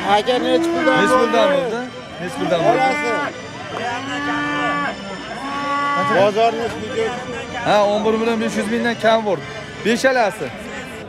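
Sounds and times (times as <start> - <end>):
bulls mooing: 0.0 - 10.6.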